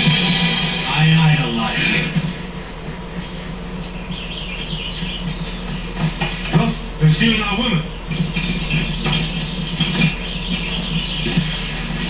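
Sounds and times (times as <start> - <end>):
steady low hum: 0.0 - 12.0
television soundtrack: 0.0 - 12.0.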